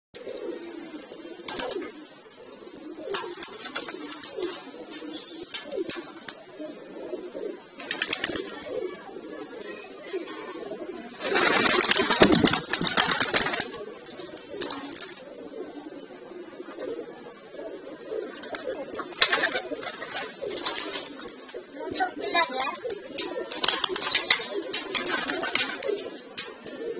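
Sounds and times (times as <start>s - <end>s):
pigeons cooing: 0.2s - 26.9s.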